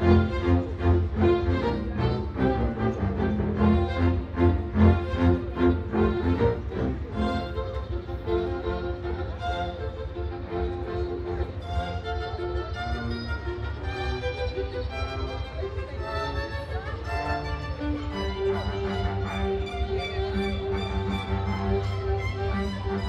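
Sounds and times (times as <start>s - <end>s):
string ensemble through loudspeakers: 0.0s - 23.0s.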